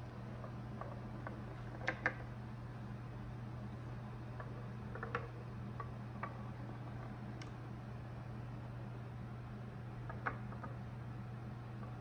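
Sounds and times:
steady low hum: 0.0s - 12.0s
ball clicking on wooden rails: 0.4s - 2.4s, 4.3s - 7.5s, 10.0s - 10.9s
metal ball rolling on wooden tracks: 4.4s - 7.1s.

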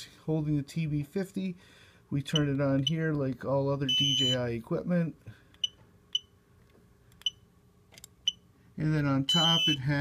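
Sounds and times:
short high-pitched beeps: 3.9s - 4.4s, 9.3s - 9.8s.

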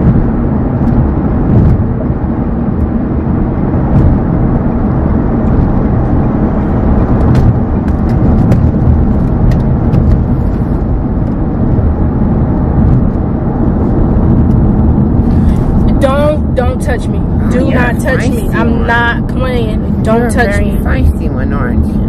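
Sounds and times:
car interior rumble: 0.0s - 22.0s.

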